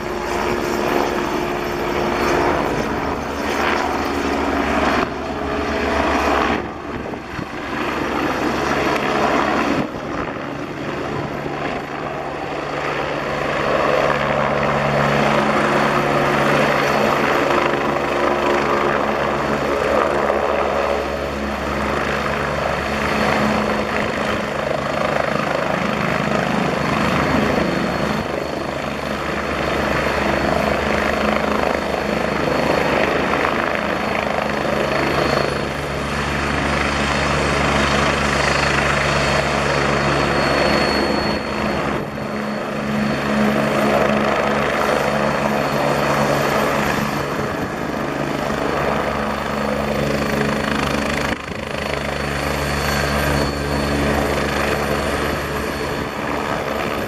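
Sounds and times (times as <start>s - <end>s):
helicopter rotor noise: 0.0s - 57.0s
high turbine whine: 0.0s - 57.0s.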